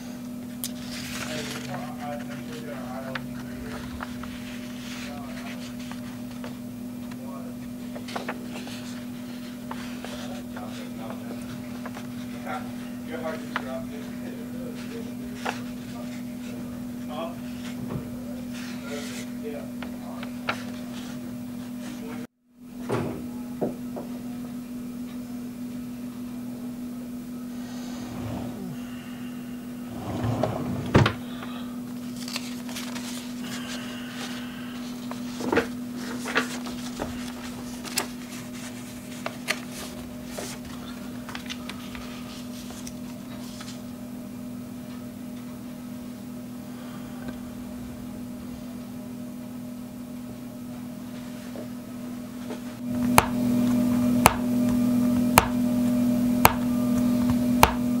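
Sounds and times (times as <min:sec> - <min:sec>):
low electrical hum: 0:00.0 - 0:58.0
soft handling sounds: 0:00.4 - 0:22.3, 0:31.9 - 0:43.9
low drone: 0:27.4 - 0:31.8.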